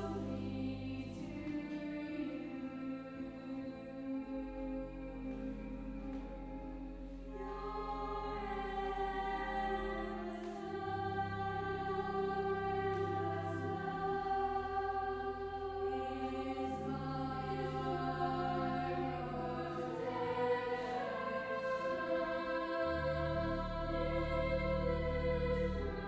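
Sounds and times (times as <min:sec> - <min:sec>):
girl singing a slow carol: 0:00.0 - 0:26.0
held low accompaniment notes: 0:00.0 - 0:26.0.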